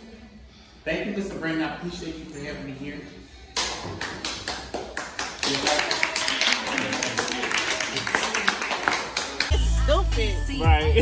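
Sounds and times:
people clapping: 3.6 - 9.6.

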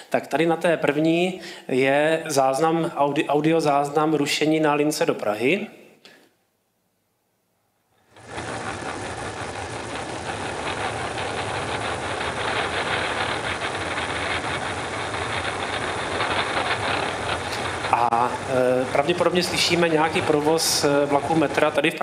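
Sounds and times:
dense rushing noise: 8.0 - 22.0
low rumble: 8.1 - 22.0.

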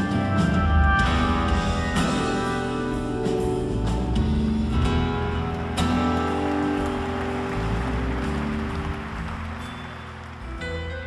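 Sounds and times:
sustained bass notes: 0.0 - 11.0.

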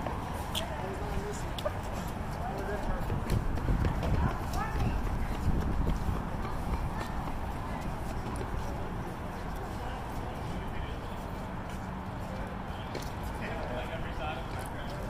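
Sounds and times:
running footfalls: 1.6 - 10.2.

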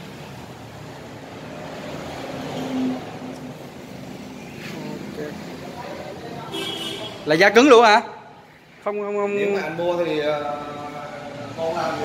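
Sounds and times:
street traffic noise: 0.0 - 12.0
vehicle passing: 0.0 - 12.0.

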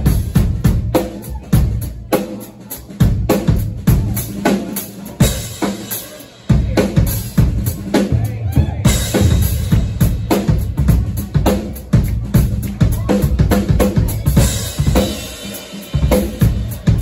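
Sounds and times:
drum kit kick and snare: 0.0 - 17.0
electric bass: 6.5 - 17.0.

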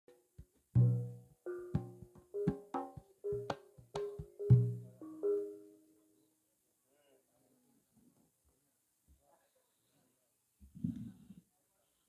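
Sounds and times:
gamelan playing: 0.8 - 6.0.

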